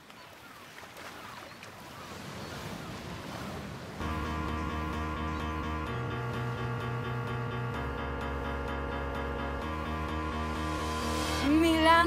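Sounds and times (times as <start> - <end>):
sea surf: 0.0 - 7.0, 9.2 - 12.0.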